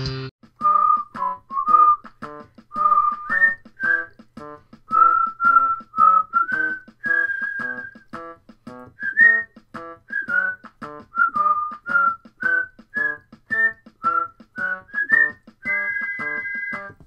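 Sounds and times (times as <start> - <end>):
bouncy keyboard chords: 0.4 - 17.0
whistled melody: 0.6 - 17.0.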